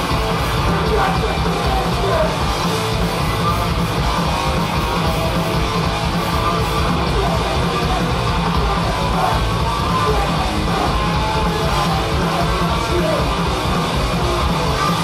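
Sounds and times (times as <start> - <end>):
bass guitar: 0.0 - 15.0
distorted electric guitars: 0.0 - 15.0
drums: 0.0 - 15.0.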